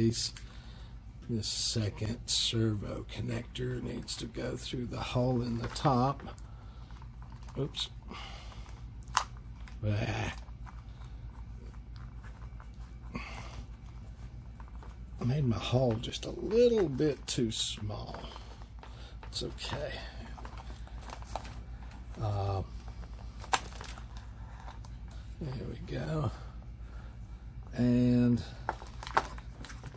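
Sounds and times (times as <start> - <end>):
steady low hum: 0.0 - 29.9.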